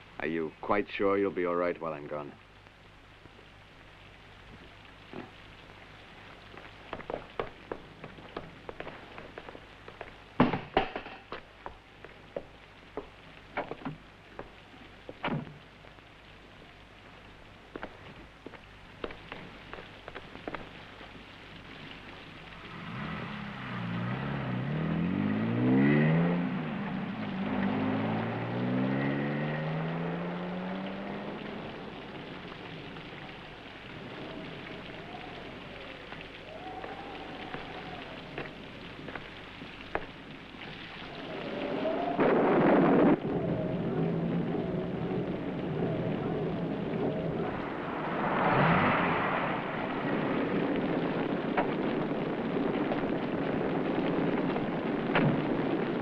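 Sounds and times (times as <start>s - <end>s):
steady rain: 0.0s - 56.0s
surge of noise: 4.4s - 56.0s
car engine revving: 22.8s - 31.8s.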